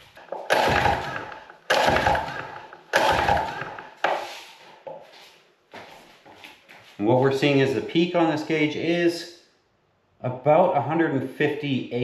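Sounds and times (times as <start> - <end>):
recoil starter cord pulled: 0.2 - 3.9.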